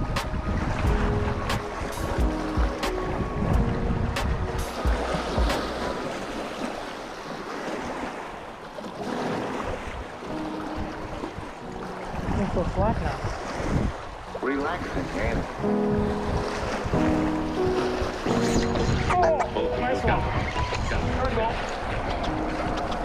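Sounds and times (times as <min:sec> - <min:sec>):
background music with held notes: 0:00.0 - 0:06.4, 0:09.0 - 0:13.1, 0:14.4 - 0:23.0
wind buffeting microphone: 0:00.0 - 0:06.6, 0:09.1 - 0:23.0
water slapping rocky shoreline: 0:00.0 - 0:23.0.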